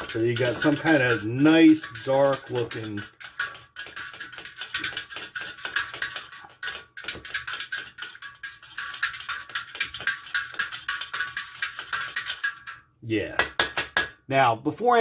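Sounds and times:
thin metal can ringing: 0.0 - 4.9.

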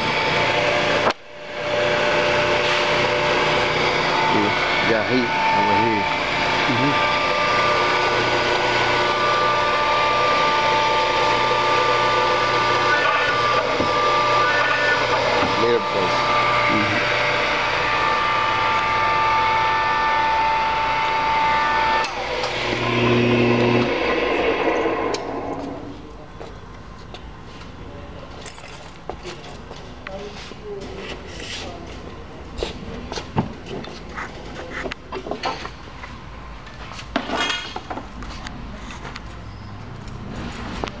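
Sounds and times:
electric motor whining: 0.0 - 26.1.

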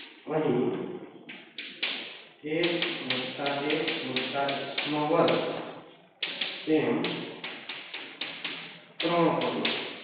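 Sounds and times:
man speaking: 0.3 - 0.9, 2.4 - 5.8, 6.6 - 7.2, 9.0 - 9.8
chalk tapping on chalkboard: 1.3 - 5.6, 6.2 - 10.0.

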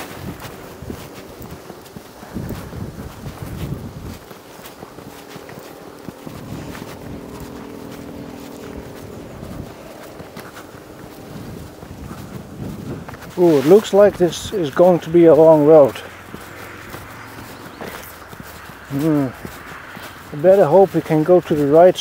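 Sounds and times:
footsteps on sandy path: 0.0 - 22.0
road traffic: 0.0 - 22.0.

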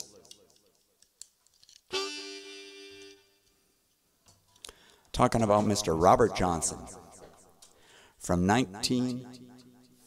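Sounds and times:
harmonica chord: 1.9 - 3.6.

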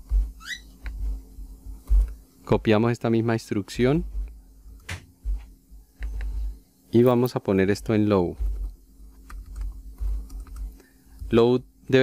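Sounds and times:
short rising squeak: 0.4 - 0.7.

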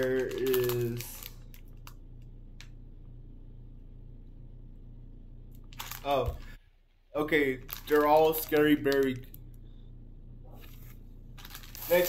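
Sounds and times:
plastic candy packet crinkling: 0.0 - 2.0, 5.6 - 6.5, 7.2 - 9.4, 10.8 - 12.0
steady low hum: 0.0 - 12.0.

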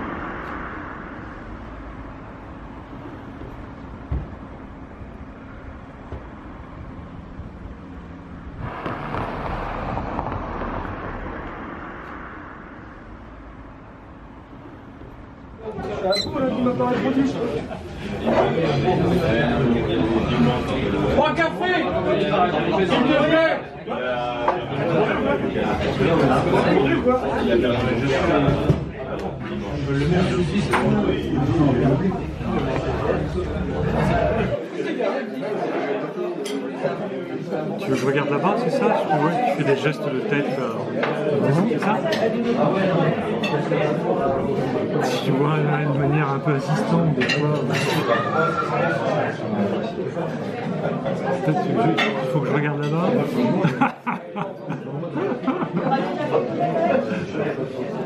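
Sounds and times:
car passing along street: 0.0 - 4.0, 8.2 - 15.6
low rumble: 0.0 - 15.7
people chattering: 0.0 - 58.0.

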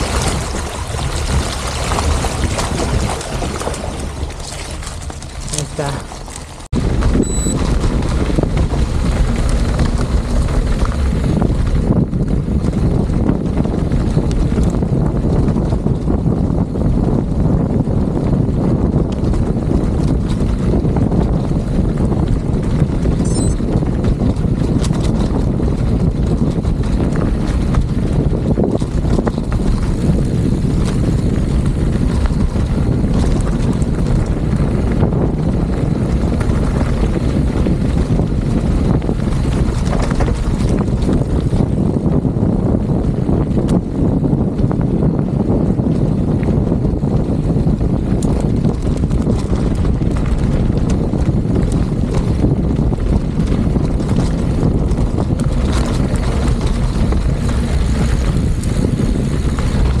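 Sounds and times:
bike tyres rolling over gravel: 0.0 - 60.0
wind buffeting microphone: 0.0 - 60.0.

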